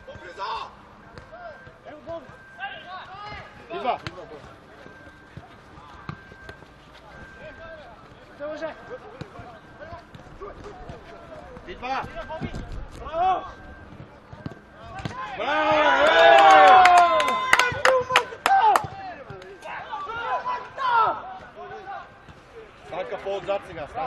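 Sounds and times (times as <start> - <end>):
players shouting: 0.0 - 6.5, 14.6 - 24.0
football kick thuds: 13.8 - 15.3.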